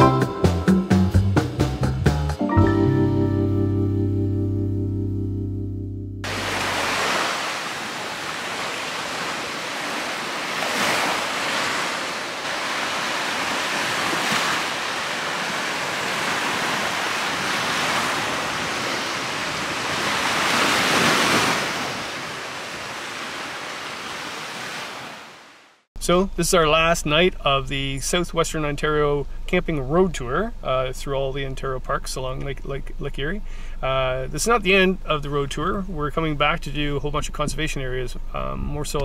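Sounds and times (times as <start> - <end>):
background music: 0.0 - 6.2
waves washing onto beach: 6.2 - 25.8.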